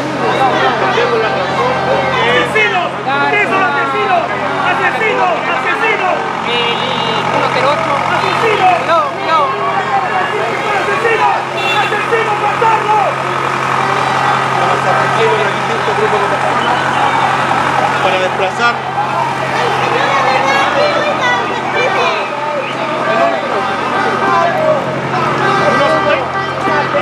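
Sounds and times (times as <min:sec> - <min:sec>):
large vehicle engine idling: 0:00.0 - 0:27.0
voices shouting and talking: 0:00.0 - 0:27.0.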